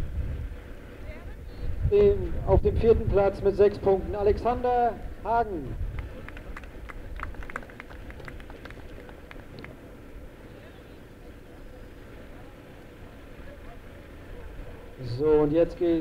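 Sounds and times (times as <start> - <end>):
low outdoor background: 0.0 - 16.0
people clapping: 5.9 - 10.0.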